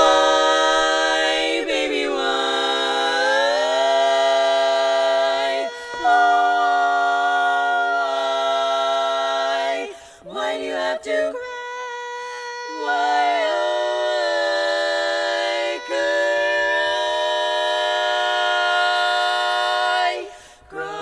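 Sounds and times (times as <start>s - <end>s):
women singing in close harmony: 0.0s - 21.0s.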